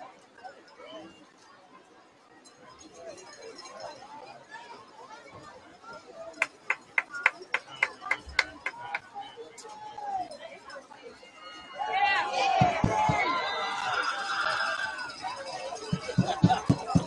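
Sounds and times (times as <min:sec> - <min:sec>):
crowd chatter: 0:00.0 - 0:17.0
cowbell struck: 0:15.4 - 0:17.0.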